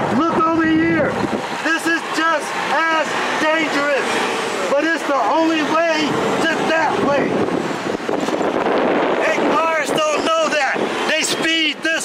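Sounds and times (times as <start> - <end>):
people's voices: 0.0 - 7.5, 9.2 - 12.0
road traffic passing: 0.0 - 12.0.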